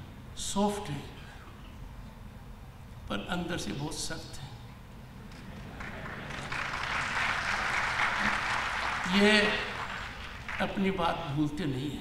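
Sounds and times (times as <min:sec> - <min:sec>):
audience applauding: 0:05.6 - 0:10.8.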